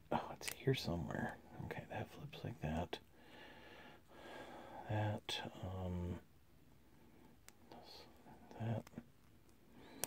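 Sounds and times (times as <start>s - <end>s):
soft breaths: 0.0s - 10.0s.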